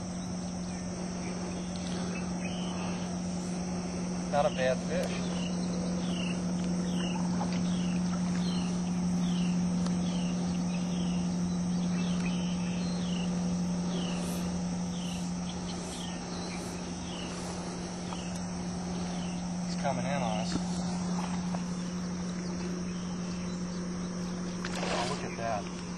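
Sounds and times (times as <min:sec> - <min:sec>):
insects droning: 0:00.0 - 0:25.9
steady low hum: 0:00.0 - 0:25.9.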